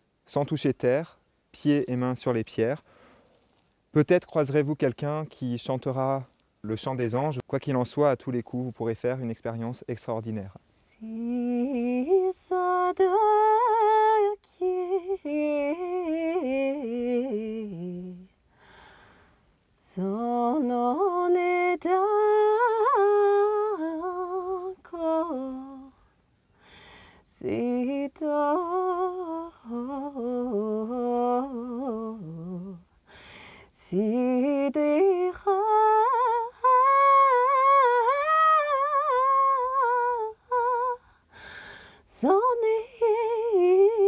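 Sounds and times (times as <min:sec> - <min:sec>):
woman breathing: 0:02.8 - 0:03.4, 0:18.4 - 0:19.6, 0:26.0 - 0:27.3, 0:32.9 - 0:33.8, 0:41.0 - 0:42.1
woman humming a melody: 0:11.0 - 0:18.4, 0:27.3 - 0:32.9.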